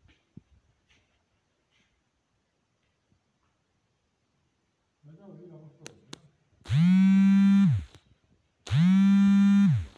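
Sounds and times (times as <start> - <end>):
loud low buzzing tones: 6.6 - 8.0, 8.6 - 9.9.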